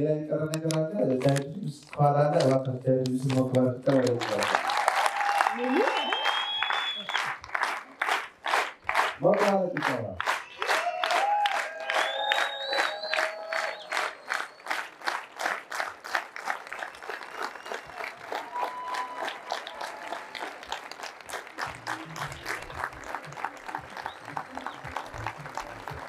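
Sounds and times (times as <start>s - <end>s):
audience clapping in rhythm: 0.0s - 26.0s.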